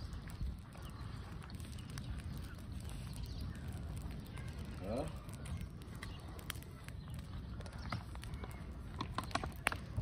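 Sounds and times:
burning grass crackling: 0.0s - 10.0s
sharp snaps of fire: 0.0s - 10.0s.

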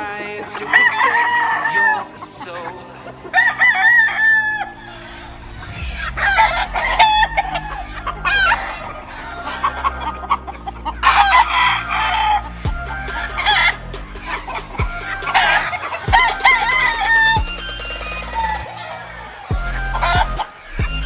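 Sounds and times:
chickens clucking: 0.0s - 21.0s
roosters crowing: 0.0s - 21.0s.

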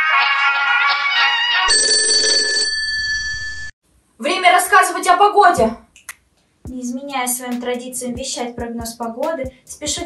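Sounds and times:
music: 0.0s - 1.7s, 6.7s - 10.0s
electronic telephone ring: 1.7s - 3.7s.

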